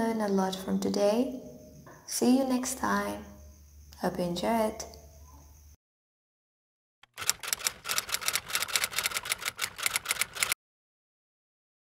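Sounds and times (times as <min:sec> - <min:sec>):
typing key clicks: 0:07.0 - 0:10.6.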